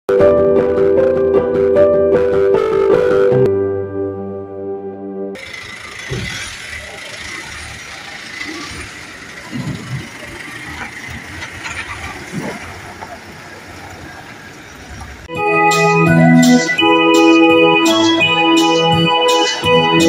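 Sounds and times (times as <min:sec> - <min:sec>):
electronic organ music: 0:00.1 - 0:05.8, 0:15.3 - 0:20.0
vehicles on a road: 0:05.3 - 0:15.3.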